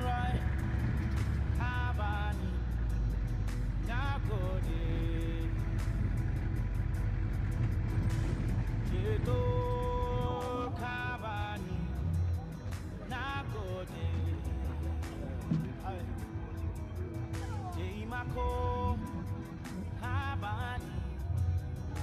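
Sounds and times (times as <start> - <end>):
person singing: 0.0 - 6.7, 8.1 - 22.0
minibus engine rumble: 0.0 - 22.0
music: 0.0 - 22.0.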